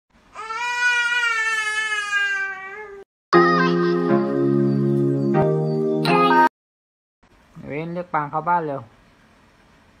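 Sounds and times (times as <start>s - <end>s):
young child wailing: 0.3s - 3.0s
intro music: 3.4s - 6.5s.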